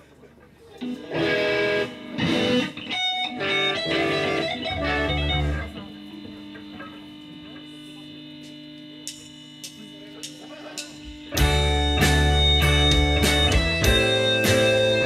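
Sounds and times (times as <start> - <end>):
live band electric guitars and bass: 0.8 - 6.4, 11.2 - 15.0
guitar tone ringing: 0.8 - 15.0
murmuring crowd: 9.7 - 11.3.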